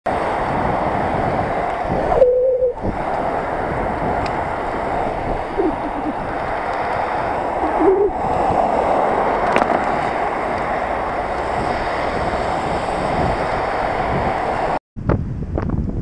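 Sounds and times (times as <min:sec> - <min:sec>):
wind rushing over microphone: 0:00.1 - 0:16.0
short steady tone: 0:02.2 - 0:02.8.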